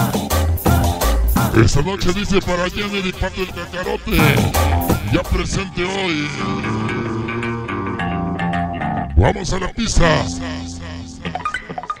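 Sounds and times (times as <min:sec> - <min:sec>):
cumbia music over sound system: 0:00.0 - 0:05.8.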